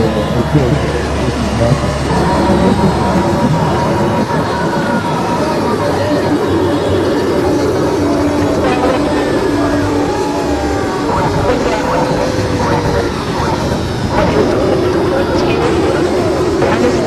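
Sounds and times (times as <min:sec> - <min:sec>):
loud dense music backing: 0:00.0 - 0:17.0
person singing long notes: 0:00.0 - 0:17.0.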